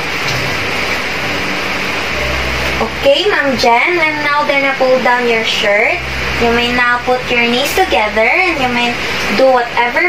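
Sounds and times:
steady room noise hiss: 0.0 - 10.0.

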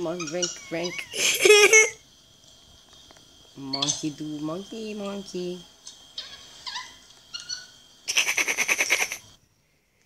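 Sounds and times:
monkey screeching chatter: 0.1 - 2.0, 6.2 - 9.3.

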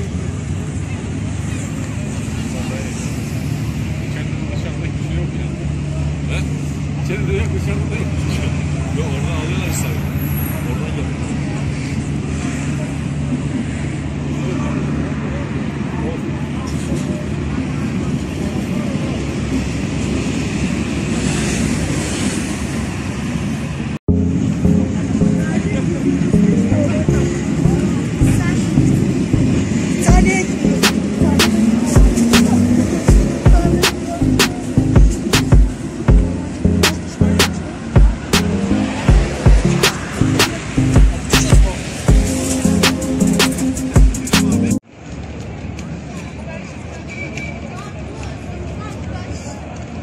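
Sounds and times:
faint voices of people: 0.0 - 19.8, 24.8 - 50.0
low rumble of road traffic: 0.0 - 50.0.

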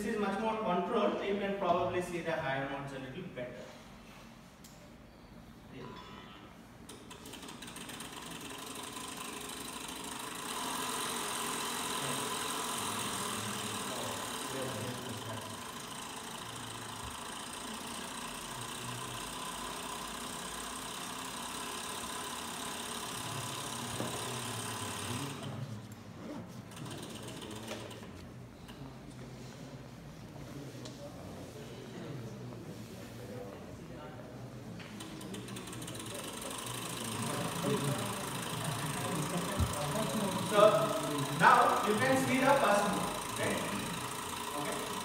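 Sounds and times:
electric motor humming: 7.4 - 25.6, 35.3 - 45.0.

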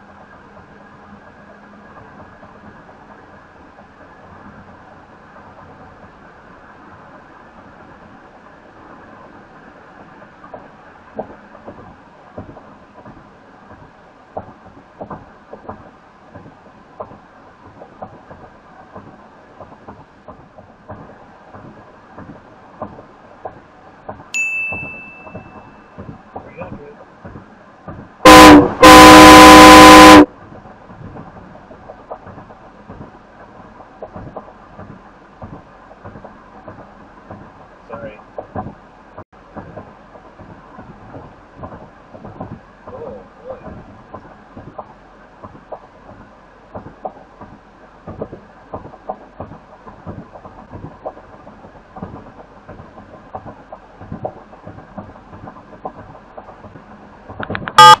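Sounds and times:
low road noise: 0.0 - 58.0
car horn honking: 28.2 - 30.3, 57.6 - 58.0
loud electronic buzz: 28.3 - 30.3.

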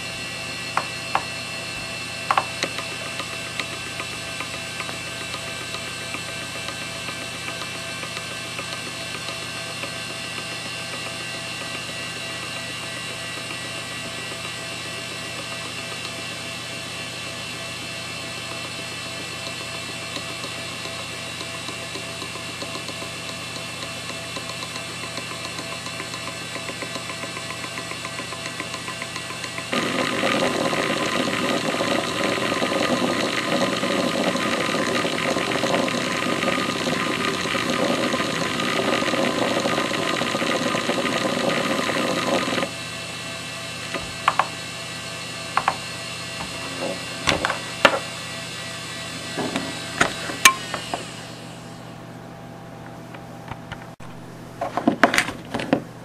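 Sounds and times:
hard drive whine: 0.0 - 56.0
hard drive ticks: 2.3 - 14.6, 19.4 - 29.7.

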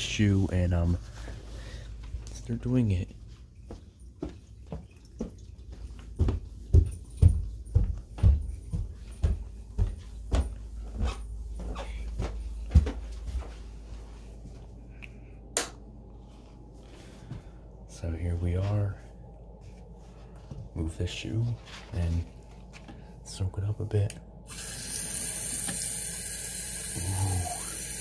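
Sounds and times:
footsteps thudding: 6.0 - 13.8.

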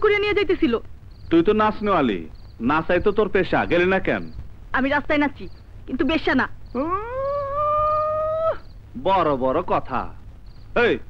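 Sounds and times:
long howl: 6.8 - 8.7.

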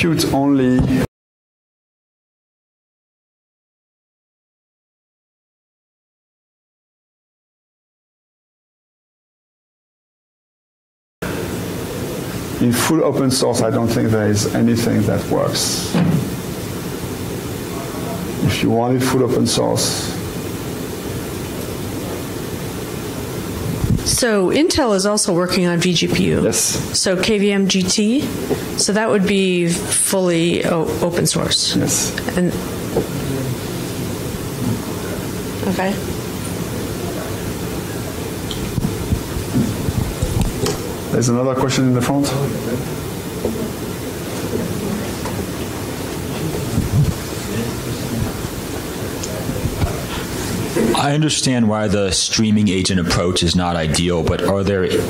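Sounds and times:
steady background hiss: 11.2 - 55.0.

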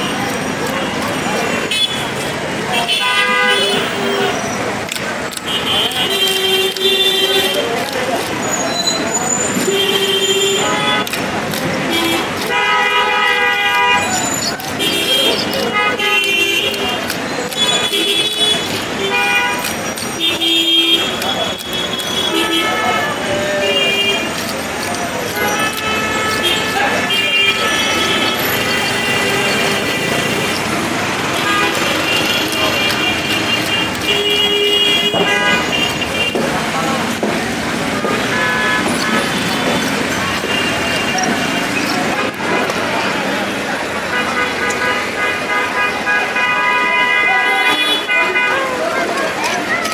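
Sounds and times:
traffic: 0.0 - 49.9
voices: 0.0 - 49.9.

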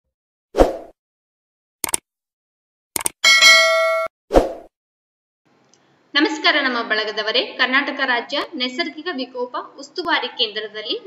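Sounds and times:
notification bell chime: 3.2 - 4.1.

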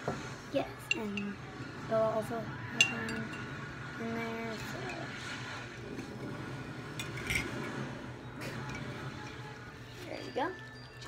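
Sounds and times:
light clinks against cups: 2.8 - 3.6.

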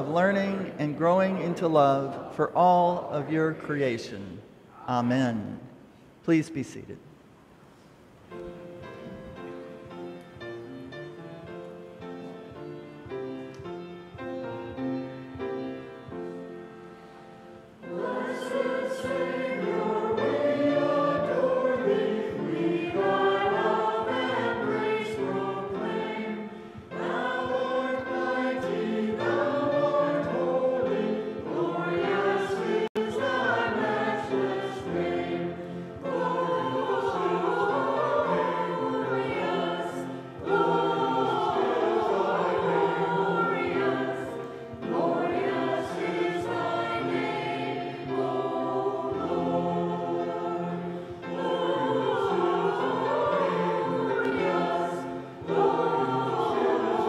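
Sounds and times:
mixed choir singing: 17.6 - 57.0.

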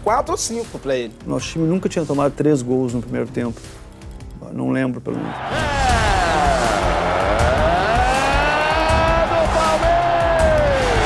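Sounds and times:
commentator's long goal shout: 5.5 - 11.0.

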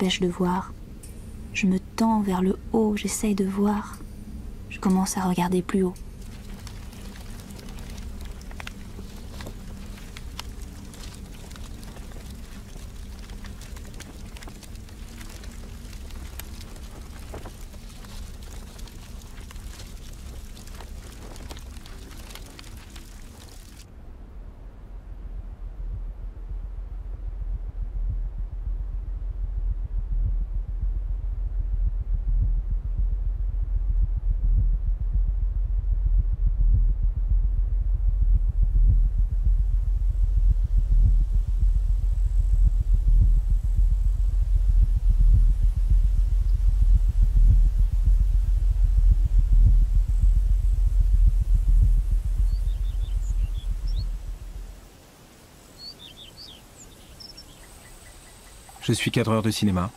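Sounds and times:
deep low rumble with thuds: 0.0 - 55.0
faint bird chirps: 52.3 - 54.9, 55.6 - 59.9.

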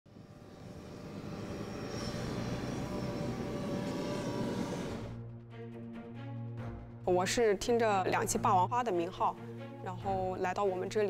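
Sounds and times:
rumbling engine-like roar: 0.1 - 5.2.

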